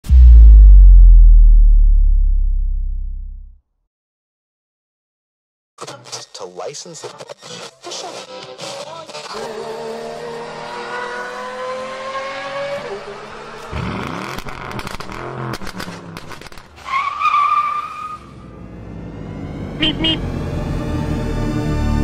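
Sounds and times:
loud rush: 0:00.0 - 0:03.4
music: 0:05.8 - 0:09.2, 0:19.5 - 0:22.0
car engine accelerating: 0:09.3 - 0:16.3
tire squeal: 0:14.0 - 0:18.6.

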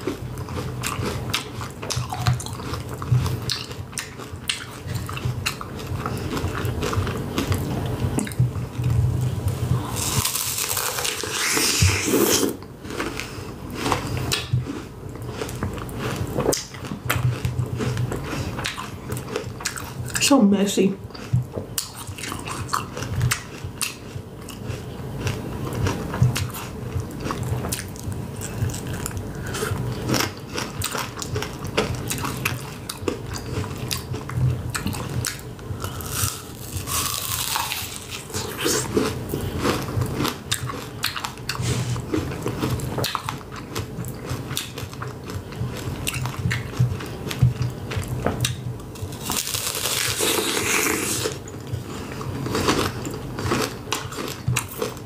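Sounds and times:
crunchy candy chewing: 0:00.0 - 0:09.0, 0:09.8 - 0:20.2, 0:21.1 - 0:55.0.

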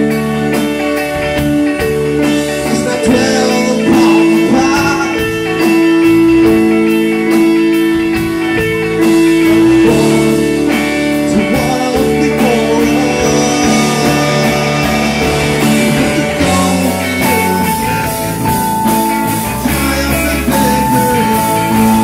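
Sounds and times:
rock band playing live: 0:00.0 - 0:22.0.

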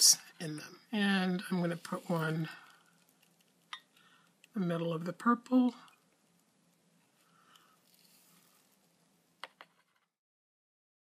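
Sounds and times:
faint room hiss: 0:00.0 - 0:10.2.

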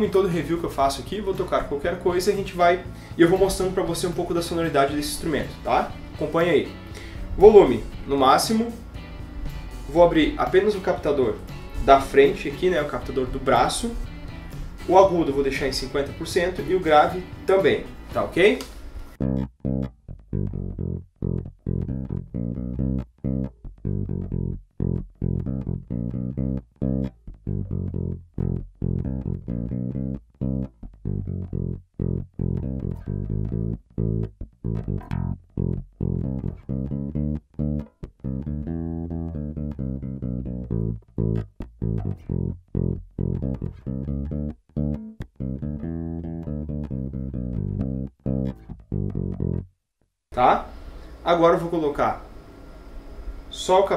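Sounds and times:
electric bass playing clipped notes: 0:00.0 - 0:49.7.

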